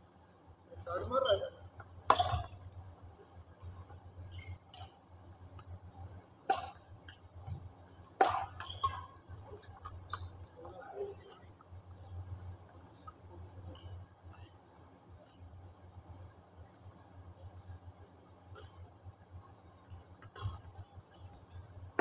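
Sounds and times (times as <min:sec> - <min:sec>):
badminton rackets hitting shuttlecock: 0:02.1 - 0:02.5, 0:06.4 - 0:07.2, 0:08.2 - 0:09.1.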